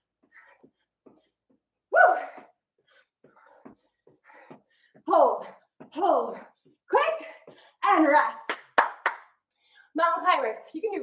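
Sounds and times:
faint breathing: 2.8 - 5.7, 9.4 - 10.0.

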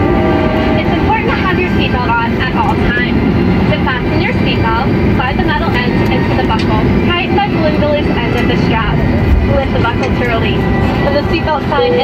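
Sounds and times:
airplane cabin rumble: 0.0 - 12.0
voice over cabin speakers: 0.7 - 12.0
held musical tones: 6.1 - 12.0.

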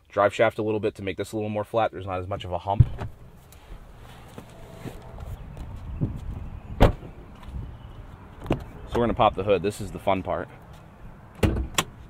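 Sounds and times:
truck door thump: 2.8 - 3.2, 6.8 - 7.2, 11.4 - 12.0.

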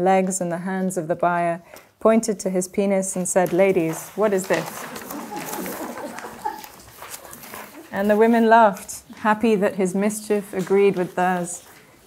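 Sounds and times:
paper rustling: 3.4 - 8.9
faint chuckles and murmurs: 4.8 - 8.0.

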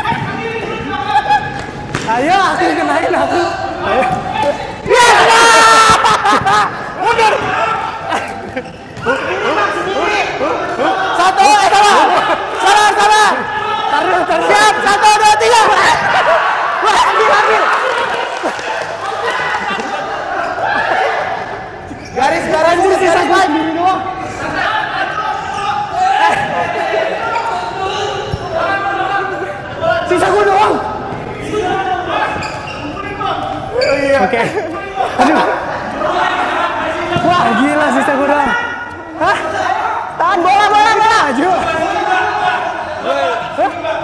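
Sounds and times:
voices calling and chattering: 0.0 - 44.0
ball bouncing on court floor: 1.6 - 2.2.

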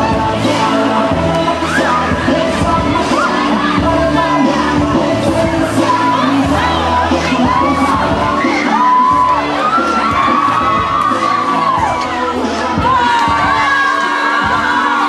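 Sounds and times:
crowd shouting and cheering: 0.0 - 15.0
music playing: 0.0 - 15.0.

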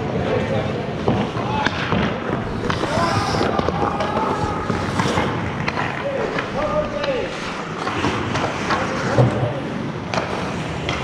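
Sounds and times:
hockey sticks and puck clacking: 0.9 - 11.0
skate blades scraping ice: 1.0 - 11.0
hiss of skates: 2.4 - 5.4.

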